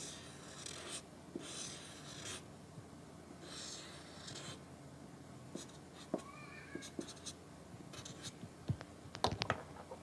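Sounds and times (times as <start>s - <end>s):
marker pen scratching on paper: 0.0s - 2.4s, 3.4s - 4.6s, 5.5s - 6.2s, 6.8s - 8.4s.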